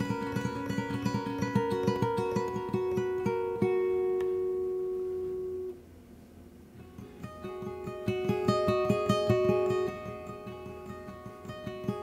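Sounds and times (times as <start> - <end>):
acoustic guitar fingerpicking: 0.0 - 5.8, 6.8 - 12.0.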